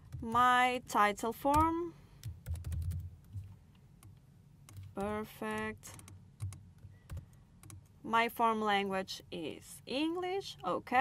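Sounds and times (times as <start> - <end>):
faint keyboard typing: 0.0 - 0.5, 1.3 - 8.0.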